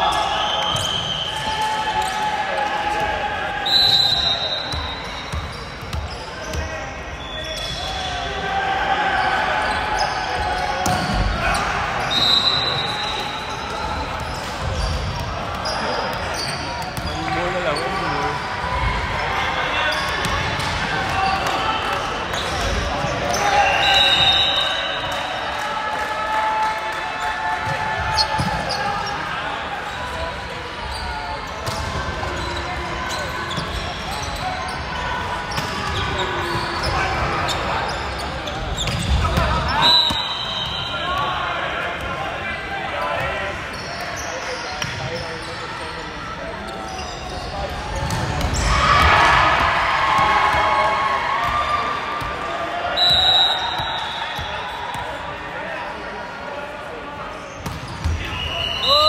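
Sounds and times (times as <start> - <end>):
crowd cheering: 0.0 - 5.3, 17.1 - 31.1, 47.9 - 56.1
referee's whistle blasts: 0.1 - 2.2, 3.6 - 6.2, 12.0 - 14.9, 23.3 - 25.3, 38.8 - 41.3, 52.9 - 54.8, 57.9 - 59.0
players shouting: 6.5 - 31.1, 46.4 - 56.1.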